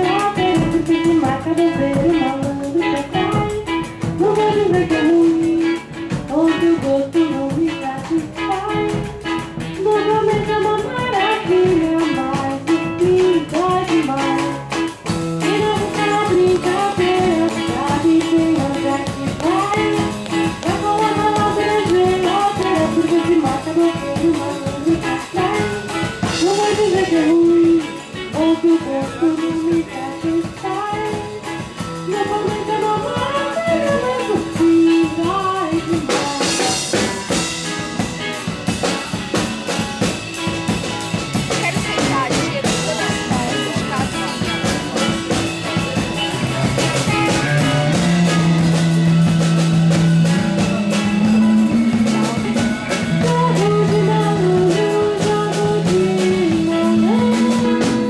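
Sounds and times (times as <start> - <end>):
person singing: 0.0 - 37.4, 41.6 - 58.0
drums: 0.0 - 58.0
guitar: 0.0 - 58.0.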